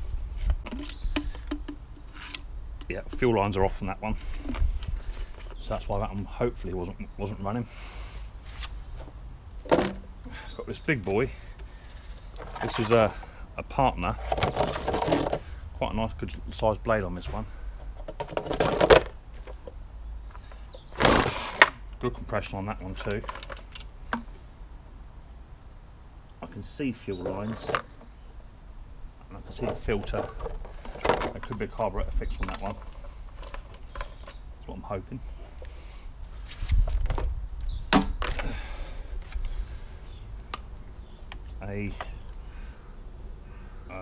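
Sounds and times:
knocks of garden tools handled: 0.5 - 3.4, 9.0 - 10.2, 14.2 - 15.5, 17.8 - 21.8, 23.0 - 24.3, 29.5 - 34.4, 37.9 - 38.8.

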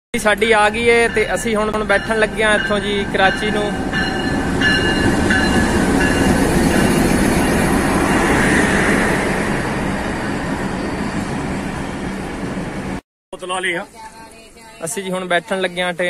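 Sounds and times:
locomotive passing: 0.2 - 13.0
train wheels on rails: 0.2 - 13.0.

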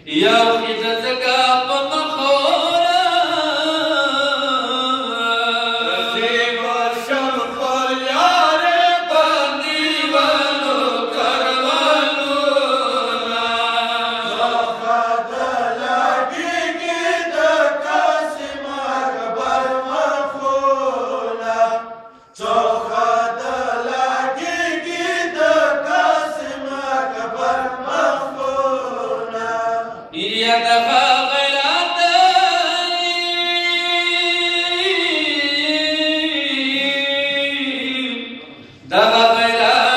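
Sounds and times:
men chanting over loudspeaker: 0.0 - 39.9.

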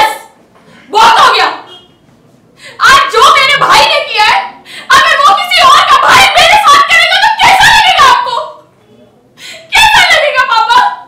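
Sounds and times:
woman speaking dramatically: 0.9 - 1.6, 2.8 - 8.5, 9.7 - 11.0.

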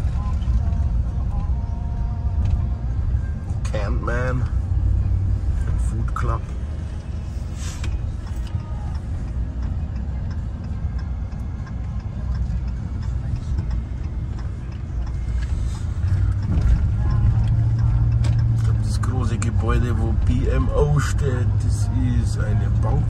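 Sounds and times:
low hum: 0.0 - 23.0
vehicle engine rumble: 0.0 - 23.0.

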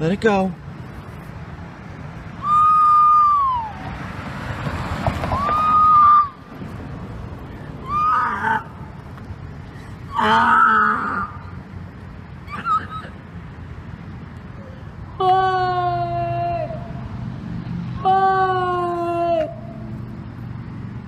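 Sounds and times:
woman screaming: 2.4 - 3.8, 5.3 - 6.4, 7.8 - 8.7, 10.1 - 11.4, 15.2 - 16.8, 18.0 - 19.6.

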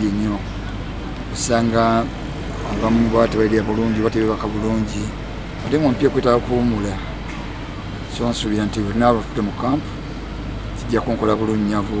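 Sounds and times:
low background hum: 0.0 - 12.0
man speaking: 1.3 - 7.0, 10.8 - 12.0.

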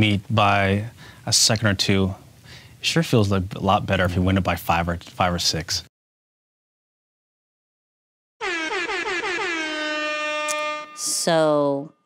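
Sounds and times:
air horn blasts: 8.4 - 11.5.

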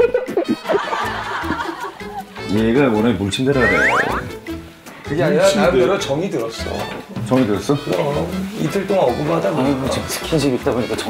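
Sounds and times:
people laughing and snickering: 0.0 - 2.3
background music: 0.0 - 11.0.

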